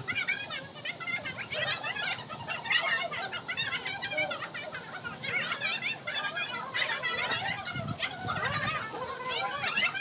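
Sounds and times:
women talking and laughing: 0.0s - 10.0s.

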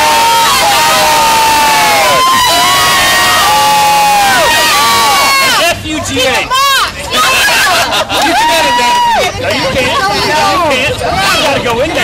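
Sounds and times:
group cheering and whooping: 0.0s - 5.6s, 6.5s - 9.6s.

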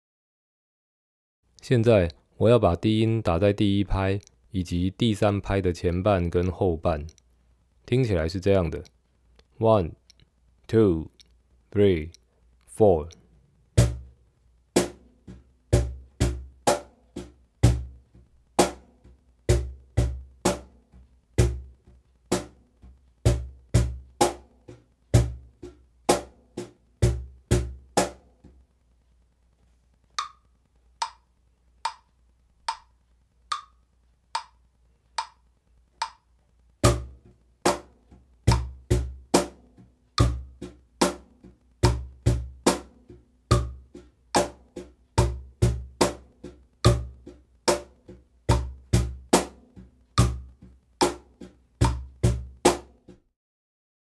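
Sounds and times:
metronome clicks: 6.4s - 7.3s, 30.1s - 37.1s
cajon played by hand: 14.8s - 28.6s, 36.8s - 53.2s.

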